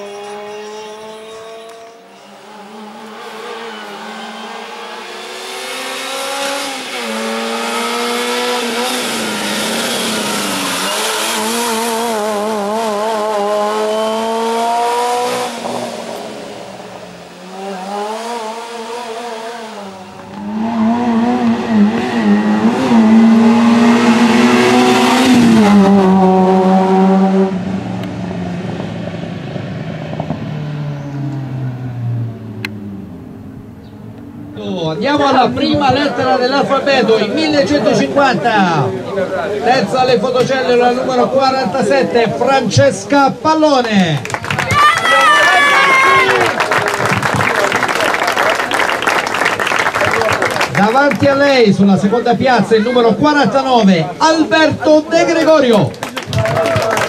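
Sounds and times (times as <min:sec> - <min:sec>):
race car engine revving hard: 0:00.0 - 0:33.6.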